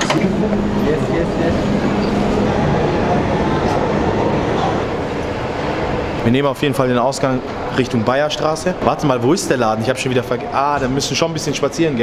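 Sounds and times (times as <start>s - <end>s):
underground train rumbling: 0.0s - 10.2s
busy platform noise: 0.0s - 12.0s.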